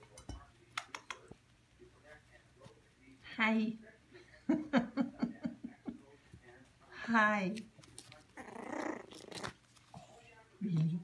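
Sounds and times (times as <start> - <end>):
dog growling: 8.4 - 10.2.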